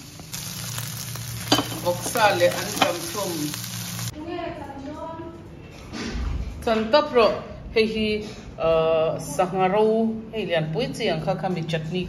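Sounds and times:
food sizzling in a pot: 0.0s - 4.1s.

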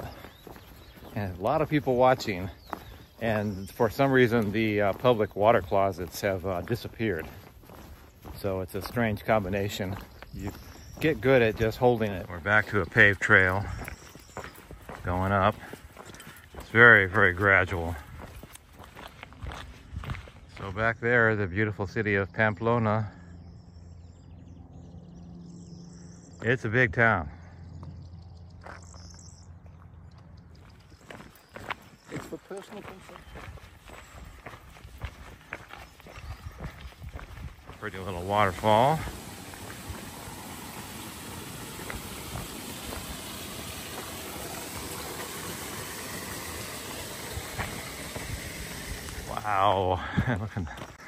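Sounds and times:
small waterfall rushing: 38.2s - 49.9s.

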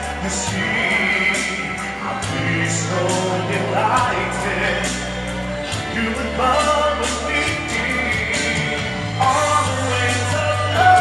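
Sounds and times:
man singing into microphone: 0.0s - 11.0s
recorded backing track: 0.0s - 11.0s.

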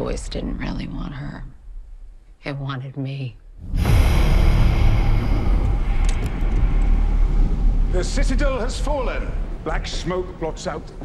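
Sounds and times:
deep rumbling drone with hiss: 3.4s - 11.0s.

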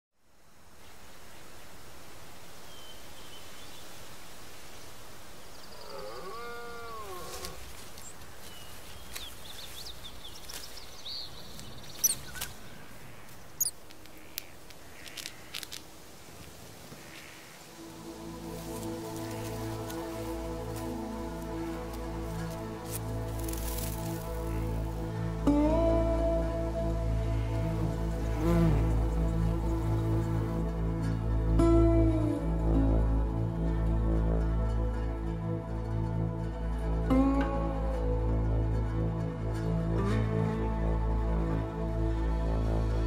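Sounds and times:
faint background noise: 0.2s - 43.0s
soft music with sustained notes: 5.5s - 13.3s, 17.0s - 43.0s
birds chirping and calling: 5.5s - 15.8s
sharp high bird calls: 5.7s - 15.7s.

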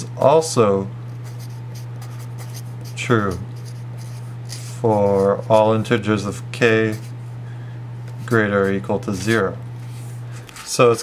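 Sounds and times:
low electrical hum: 0.0s - 11.0s
marker writing on paper: 1.2s - 5.7s.

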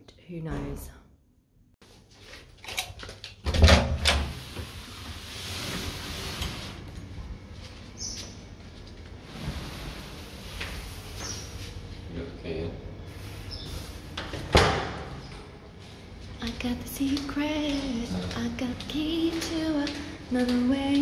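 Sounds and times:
steady open air hiss: 7.5s - 21.0s
door shutting with a thud: 14.3s - 15.2s.

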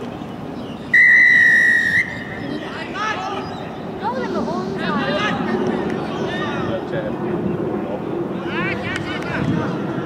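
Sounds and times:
referee's whistle blast: 0.9s - 2.2s.

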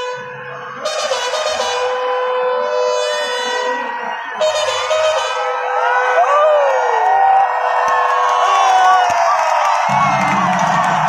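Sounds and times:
crowd cheering and whooping: 0.4s - 11.0s.

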